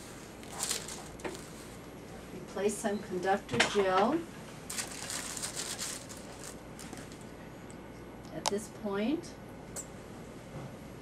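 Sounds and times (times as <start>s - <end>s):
crinkling and rustling handling noise: 0.0s - 1.9s, 3.8s - 7.4s.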